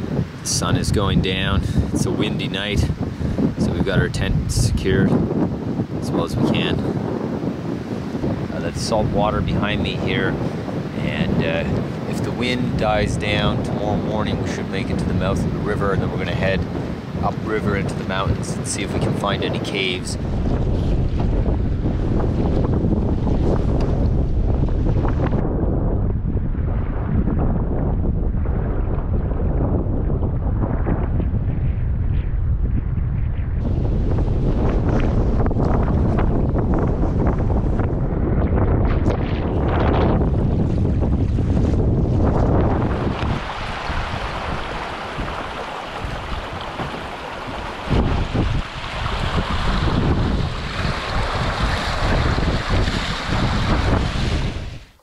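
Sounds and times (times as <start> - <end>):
waves slapping a canoe: 0.0 - 25.4, 33.7 - 38.1, 38.7 - 55.0
wind buffeting microphone: 0.0 - 55.0
shallow water splashing: 40.6 - 54.9.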